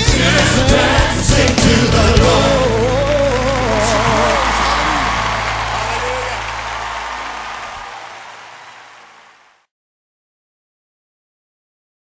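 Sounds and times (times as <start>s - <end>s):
person singing: 0.0s - 6.5s
band holding a low chord: 0.1s - 7.8s.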